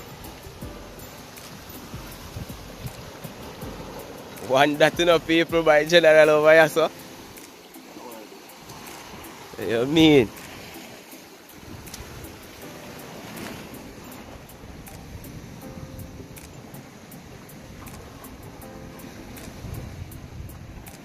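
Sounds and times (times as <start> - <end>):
wind noise: 0.0 - 5.7, 11.6 - 21.0
faint music: 0.0 - 21.0
sea surf: 0.0 - 21.0.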